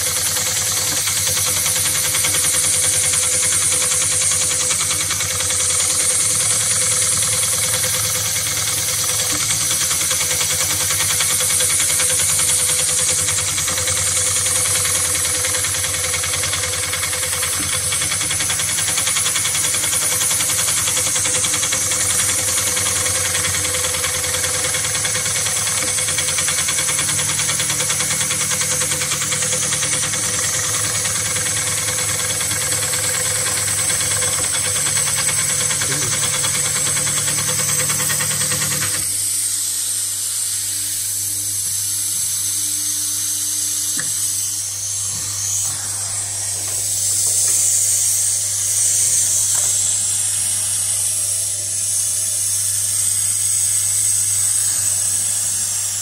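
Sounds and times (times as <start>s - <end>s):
industrial sewing machine running: 0.0s - 56.0s.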